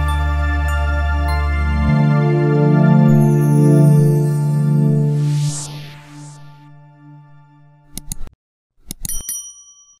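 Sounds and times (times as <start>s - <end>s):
mouse clicks: 7.9s - 9.1s
bright bell ringing: 9.1s - 10.0s.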